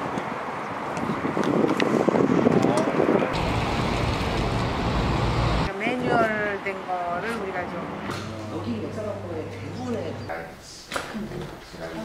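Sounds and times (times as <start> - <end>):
wind blowing across microphone: 0.0 - 6.7.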